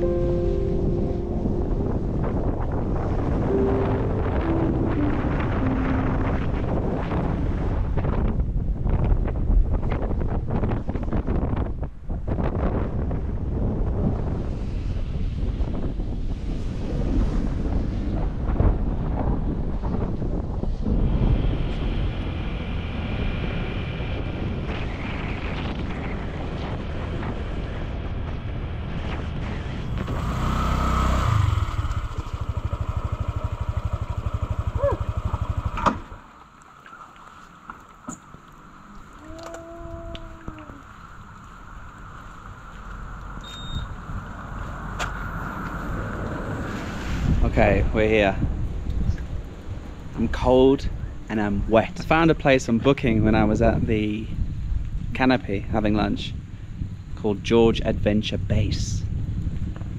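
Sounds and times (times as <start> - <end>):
wind buffeting microphone: 0.0 - 36.6, 37.6 - 59.9
scooter engine: 29.9 - 36.5.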